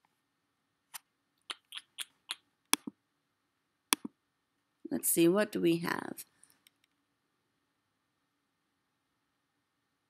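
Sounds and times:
computer mouse clicks: 3.9s - 4.1s.

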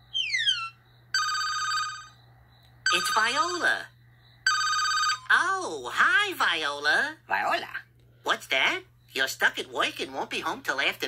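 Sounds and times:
cell phone ringtone: 0.2s - 2.2s, 2.9s - 5.5s.

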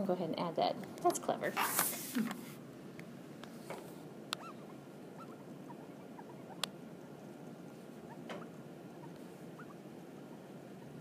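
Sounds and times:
stylus squeaking on a screen: 4.4s - 11.0s.

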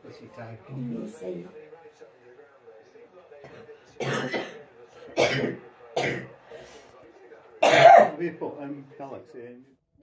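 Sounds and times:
person coughing: 4.0s - 4.6s, 5.2s - 6.2s, 7.6s - 8.2s.

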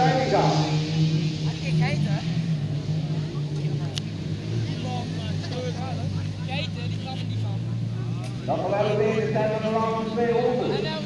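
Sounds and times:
faint voices: 0.0s - 11.0s
race car engines droning: 0.0s - 11.0s.

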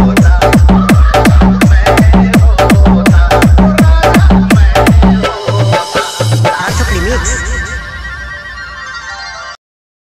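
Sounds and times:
hard-bass dance remix: 0.0s - 8.9s.

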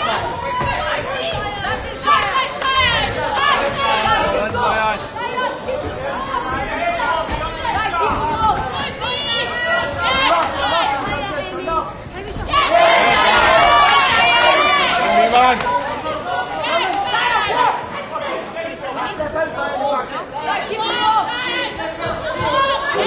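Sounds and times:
crowd shouting: 0.0s - 19.1s, 20.3s - 23.0s.

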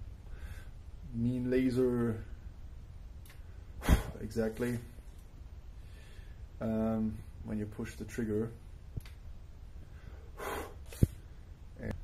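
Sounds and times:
sharp breath out through nose: 3.8s - 4.2s, 9.9s - 11.2s.

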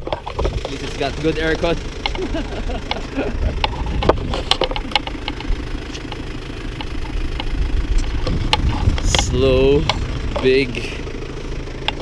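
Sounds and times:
pickup truck engine idling: 0.0s - 12.0s
sharp clicks: 2.8s - 10.5s.

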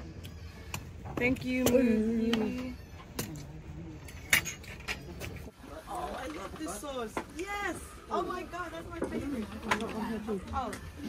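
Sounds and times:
tableware clinking: 3.2s - 5.5s.

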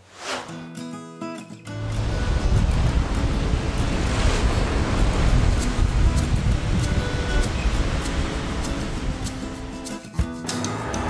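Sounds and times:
surf: 0.0s - 0.7s, 1.7s - 11.0s
wind buffeting microphone: 1.9s - 9.8s.

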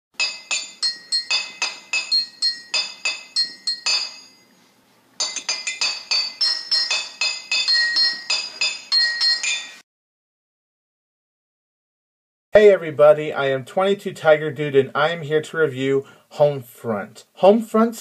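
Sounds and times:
struck chime notes jingle: 0.2s - 4.6s, 5.2s - 9.8s.

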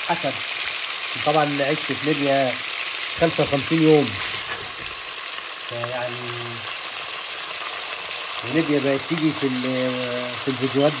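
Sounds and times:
meat sizzling in hot oil: 0.0s - 11.0s.

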